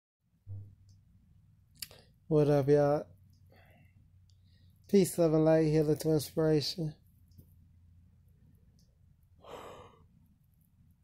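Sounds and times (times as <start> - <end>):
faint low room hum: 0.3 - 11.0
breathy sigh: 9.4 - 10.1.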